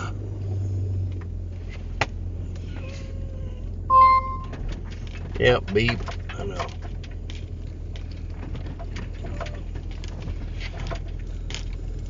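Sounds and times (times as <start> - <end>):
engine humming: 0.0 - 12.0
short electronic beep: 3.9 - 4.6.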